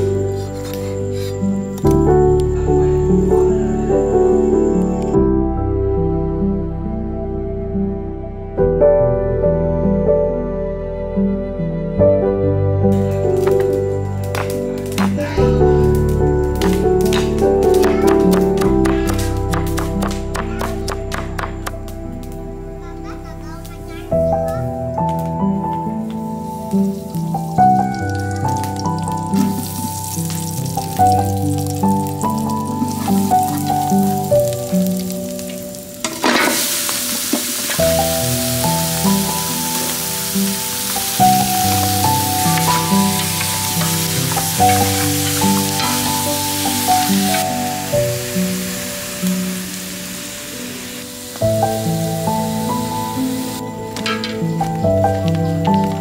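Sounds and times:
melodic background music: 0:00.0 - 0:56.0
bones sizzling in a pot: 0:25.9 - 0:55.9.

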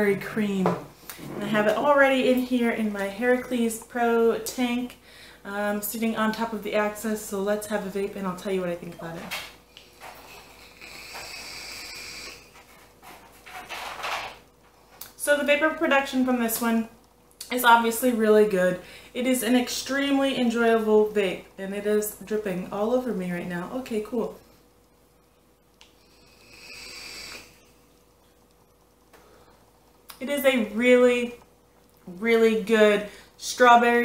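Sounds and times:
person exhaling vape vapor: 0:09.8 - 0:12.6, 0:25.8 - 0:27.7
air hiss with light whistle: 0:26.1 - 0:27.7.

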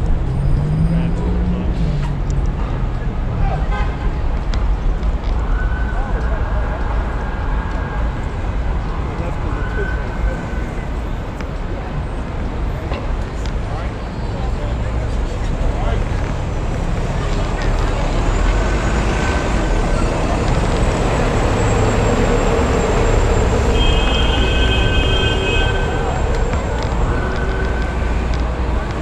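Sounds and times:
city street traffic: 0:00.0 - 0:29.0.

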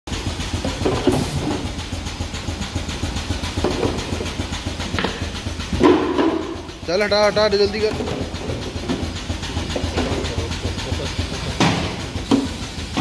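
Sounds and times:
conveyor machinery rattling: 0:00.1 - 0:13.0.

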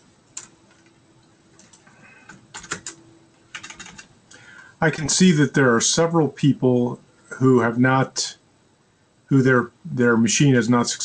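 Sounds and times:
keyboard keys clicking: 0:01.6 - 0:04.1
man speaking: 0:04.8 - 0:08.4, 0:09.3 - 0:11.0.

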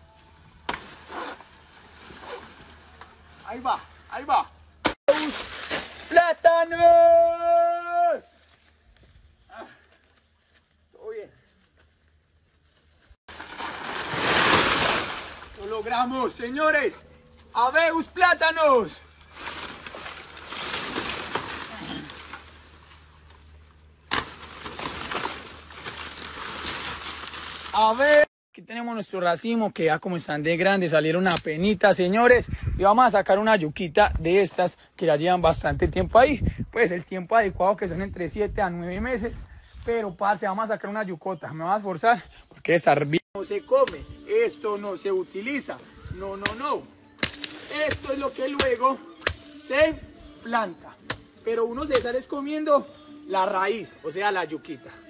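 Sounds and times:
large leaves rustling and crackling: 0:00.1 - 0:04.2, 0:05.1 - 0:06.6, 0:08.3 - 0:16.8, 0:18.2 - 0:28.3, 0:43.5 - 0:49.8
blade chopping plant trunk: 0:19.4 - 0:22.4, 0:24.1 - 0:27.6, 0:46.4 - 0:46.6, 0:47.2 - 0:49.5.

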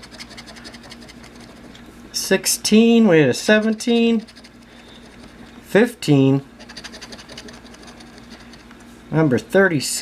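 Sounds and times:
coin scratching lottery ticket: 0:00.0 - 0:01.7, 0:03.6 - 0:05.5, 0:06.6 - 0:08.7.

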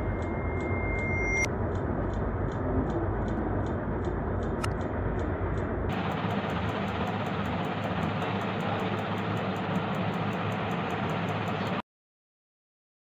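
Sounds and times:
machine running with fast ticking: 0:00.0 - 0:11.8.

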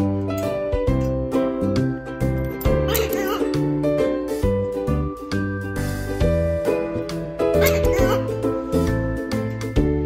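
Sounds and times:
children's music: 0:00.0 - 0:10.0
high squeaky cartoon voice: 0:02.7 - 0:03.6, 0:07.6 - 0:08.4.

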